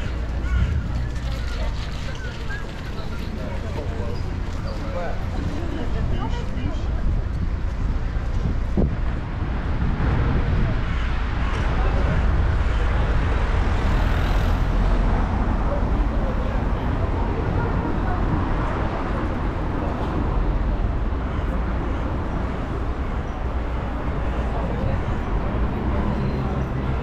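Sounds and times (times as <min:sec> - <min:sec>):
wind on microphone: 0:00.0 - 0:02.8, 0:05.9 - 0:22.6
passers-by talking: 0:00.0 - 0:27.0.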